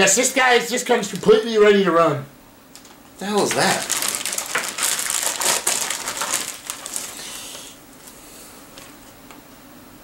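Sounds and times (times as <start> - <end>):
plastic bag crinkling: 2.8 - 7.8.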